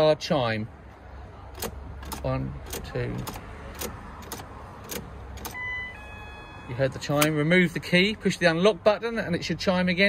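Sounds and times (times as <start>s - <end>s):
ignition key clicks: 1.5s - 5.6s, 7.1s - 7.4s.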